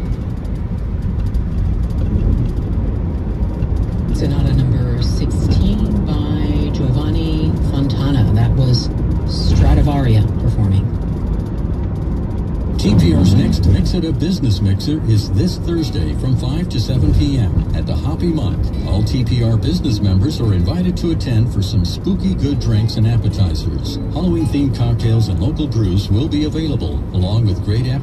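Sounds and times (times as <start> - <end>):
car road and engine noise: 0.0 - 28.0
voice on car radio: 4.1 - 11.0, 12.7 - 28.0.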